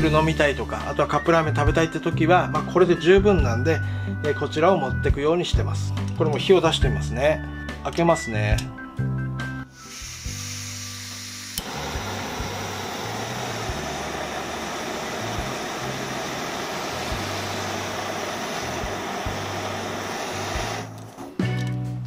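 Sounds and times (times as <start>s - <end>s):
gas burner rushing hiss: 9.7s - 21.1s
gas hissing from valve: 9.7s - 21.1s
stove igniter click: 11.4s - 21.1s.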